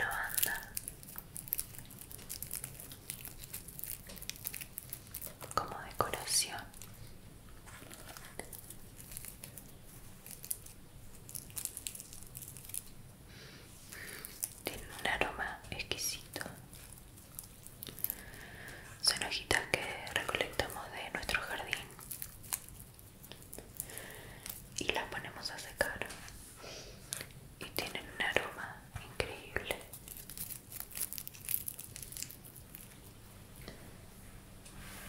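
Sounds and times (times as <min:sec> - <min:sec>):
soft whispering: 0:00.0 - 0:01.6, 0:05.4 - 0:07.1, 0:13.7 - 0:17.0, 0:17.9 - 0:22.2, 0:23.4 - 0:30.0.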